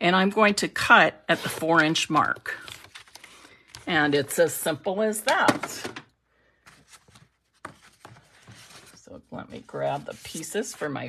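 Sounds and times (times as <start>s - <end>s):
faint rustling and handling: 6.6s - 11.0s.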